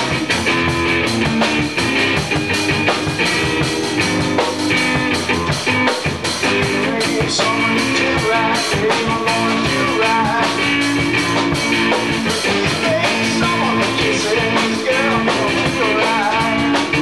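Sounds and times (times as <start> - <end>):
rock song with guitar and drums: 0.0 - 17.0.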